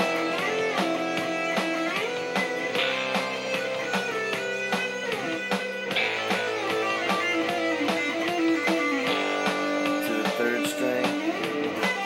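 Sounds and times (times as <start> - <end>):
backing track sustained chords: 0.0 - 12.0
electric guitar melody: 0.0 - 12.0
steady drum beat: 0.0 - 12.0.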